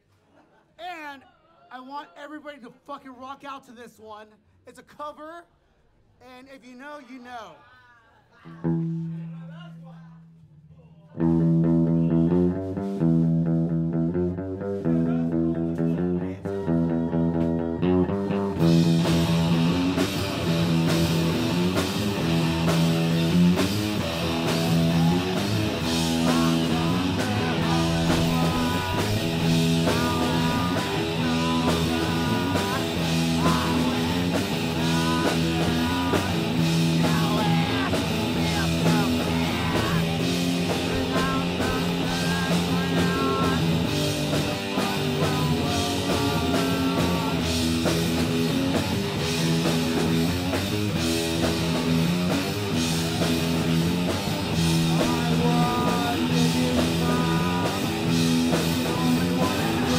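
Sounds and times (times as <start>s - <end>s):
guitar and bass riff: 8.6s - 9.4s, 11.2s - 59.9s
rock band playing: 11.2s - 59.9s
drums and cymbals: 18.5s - 59.9s.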